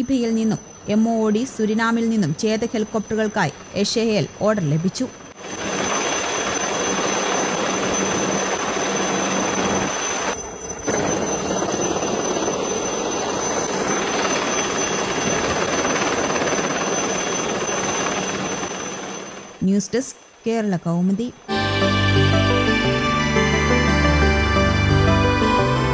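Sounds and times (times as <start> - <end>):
helicopter engine and rotor noise: 0.0 - 19.7.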